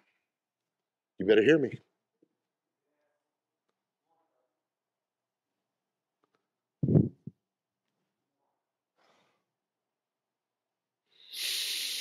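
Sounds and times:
faint breath: 11.1 - 12.0.

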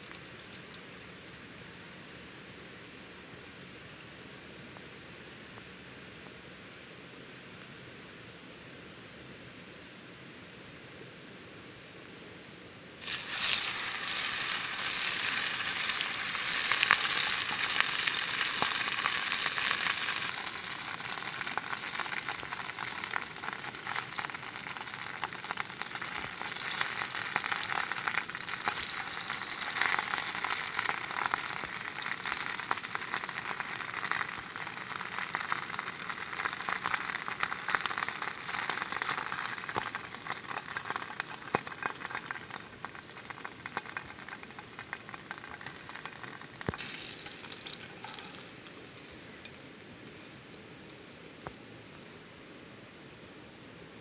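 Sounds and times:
food sizzling in a pan: 13.0 - 51.2.

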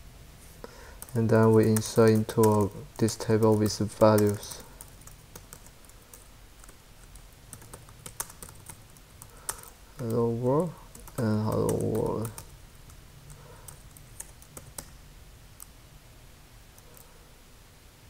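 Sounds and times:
person's voice: 1.1 - 4.8, 10.0 - 12.5.

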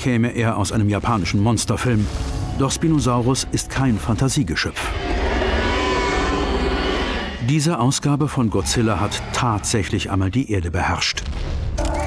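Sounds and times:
deep dinosaur roar: 4.8 - 7.6, 8.6 - 9.9.

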